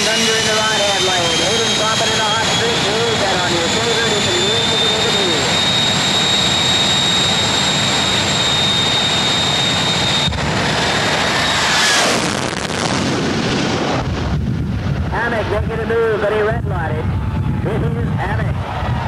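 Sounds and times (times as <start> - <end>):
jet engines whining and roaring: 0.0 - 19.0.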